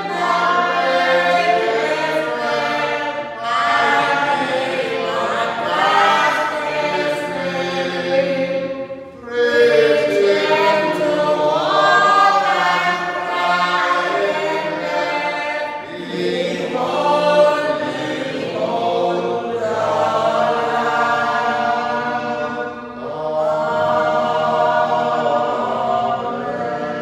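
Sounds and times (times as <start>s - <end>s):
voices singing a slow hymn: 0.0s - 27.0s.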